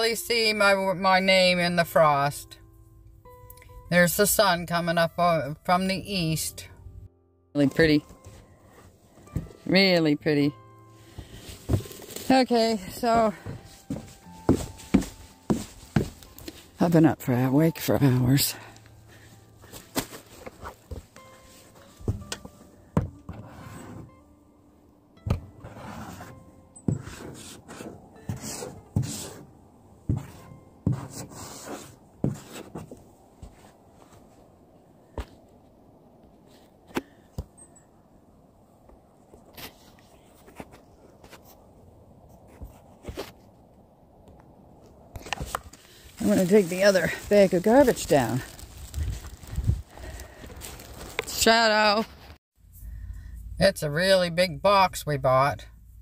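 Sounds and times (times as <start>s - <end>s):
footsteps: 11.1s - 16.8s, 18.8s - 23.2s, 25.9s - 34.5s, 45.2s - 52.4s.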